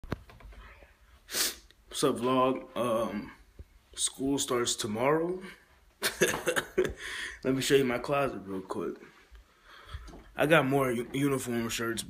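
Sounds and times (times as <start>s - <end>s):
sharp burst of breath: 1.2s - 1.7s.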